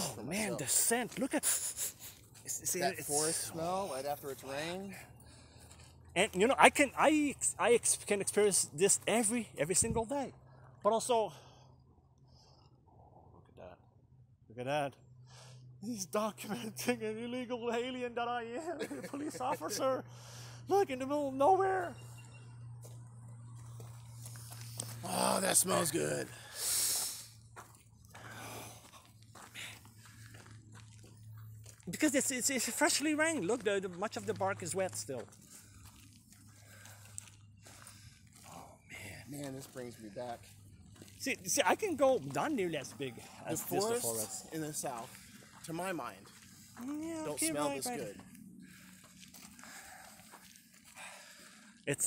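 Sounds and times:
steady low hum: 0.0 - 52.0
breathing and sniffing: 1.4 - 2.4, 15.2 - 15.8, 20.0 - 20.7, 26.3 - 27.5, 35.4 - 39.3, 48.4 - 51.8.

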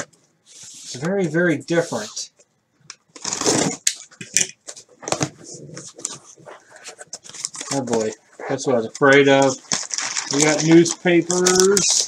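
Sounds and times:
cardboard box ripping: 3.2 - 3.8
cardboard crackling and rustling: 5.0 - 12.0.

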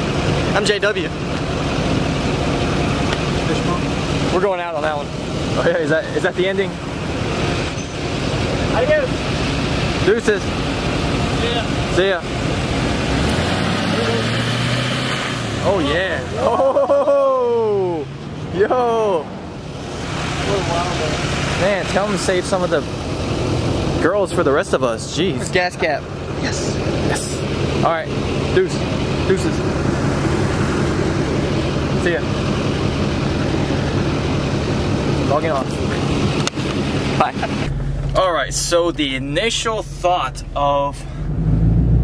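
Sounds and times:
truck engine running: 0.0 - 42.0.

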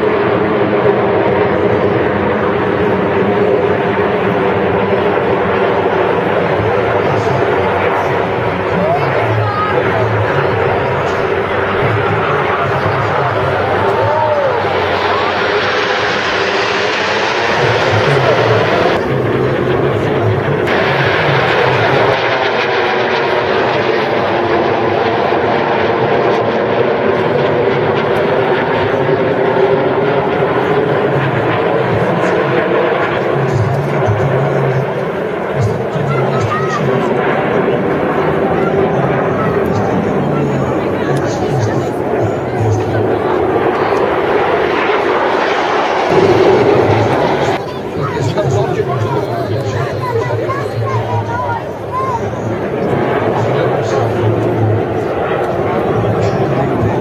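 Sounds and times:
jet engines roaring overhead: 0.0 - 57.0.

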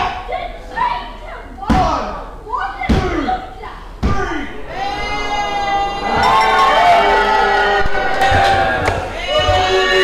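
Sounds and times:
voices calling out: 4.6 - 10.0.

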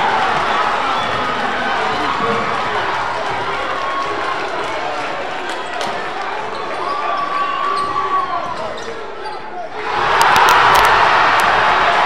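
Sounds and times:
spectators' voices: 0.0 - 12.0
sneaker squeaks: 6.5 - 9.7.

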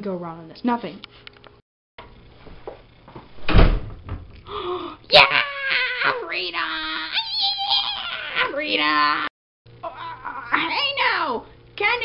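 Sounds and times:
door shutting with thud: 2.5 - 4.4.

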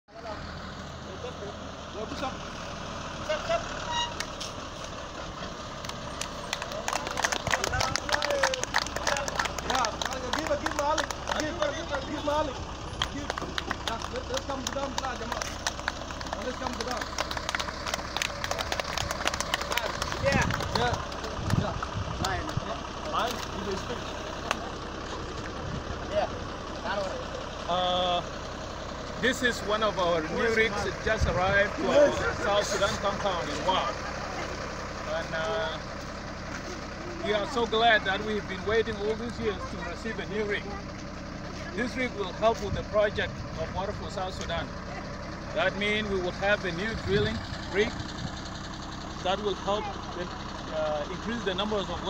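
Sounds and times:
truck diesel engine running: 0.1 - 52.0.

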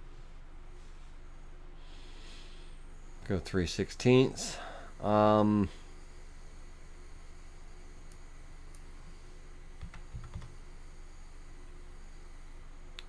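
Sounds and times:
low electrical hum: 0.0 - 13.0
computer keyboard keystrokes: 9.8 - 10.6.

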